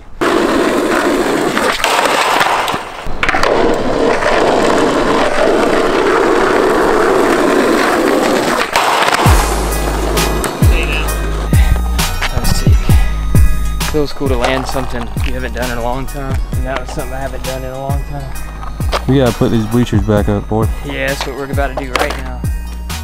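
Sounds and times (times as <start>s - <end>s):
skateboard wheels rolling on asphalt: 0.0s - 12.8s, 13.5s - 22.4s
background music with a beat: 9.1s - 23.0s.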